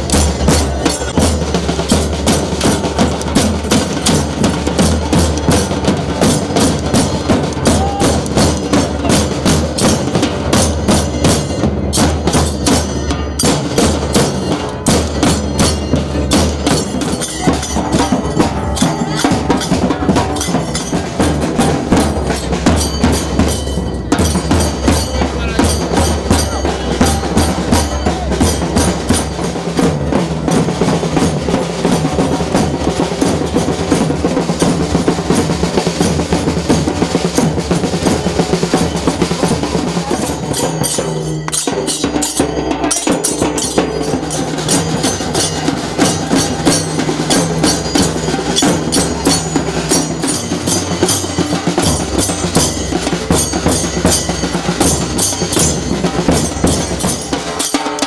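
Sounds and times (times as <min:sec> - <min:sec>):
large drums beaten fast: 0:00.0 - 0:58.0.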